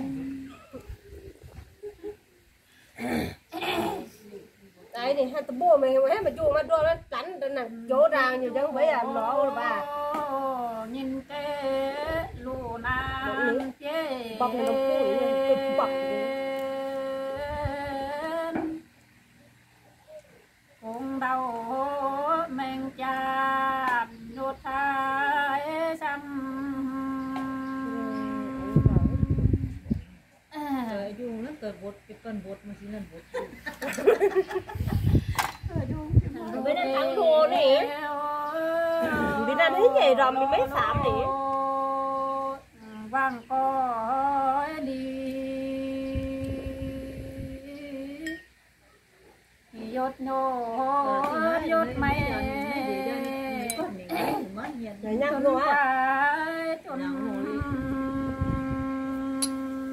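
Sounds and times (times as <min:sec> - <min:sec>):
woman singing a long note: 0:00.0 - 0:00.6, 0:07.8 - 0:18.8, 0:20.8 - 0:29.9, 0:35.7 - 0:48.4, 0:49.7 - 0:54.4, 0:55.0 - 0:59.9.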